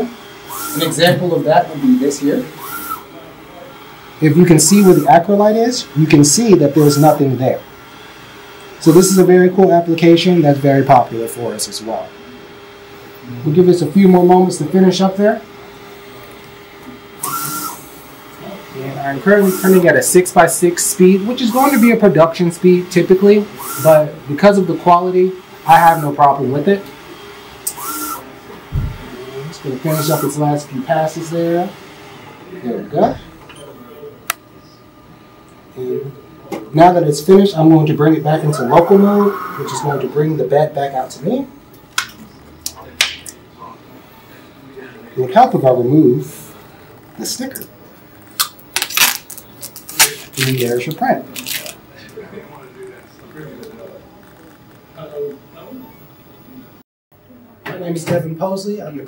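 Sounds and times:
print carriage whine and hiss: 0:00.0 - 0:42.6, 0:43.4 - 0:48.2
printer humming: 0:00.0 - 0:56.8.

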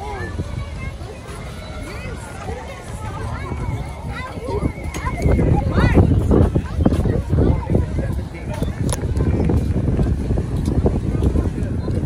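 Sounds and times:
people's voices outdoors: 0:00.0 - 0:12.0.

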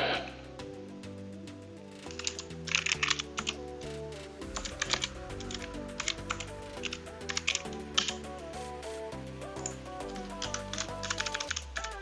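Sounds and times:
quiet background music: 0:00.0 - 0:12.0
keyboard typing: 0:02.0 - 0:12.0.

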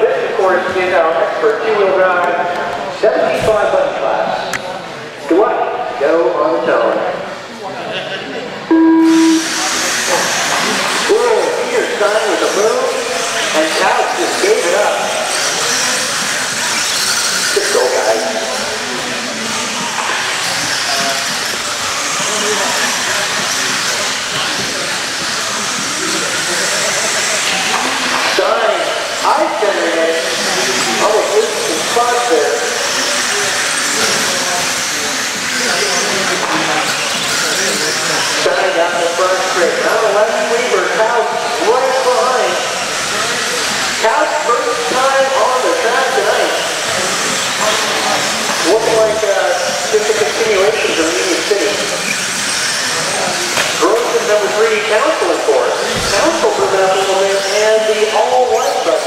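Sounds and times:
electric rc cars whining: 0:08.7 - 0:59.0
person talking: 0:48.6 - 0:51.5.

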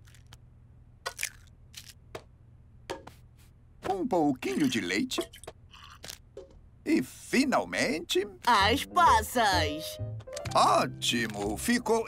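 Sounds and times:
eggshell cracks and clicks: 0:00.0 - 0:00.4, 0:01.0 - 0:02.3.

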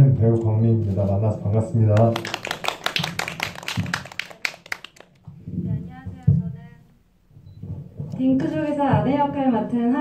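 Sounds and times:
audience applauding: 0:01.9 - 0:05.3.

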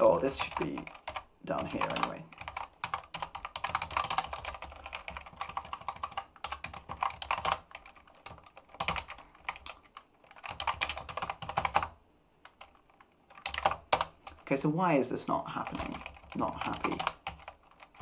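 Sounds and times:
computer keyboard typing: 0:00.0 - 0:14.5, 0:15.6 - 0:18.0.

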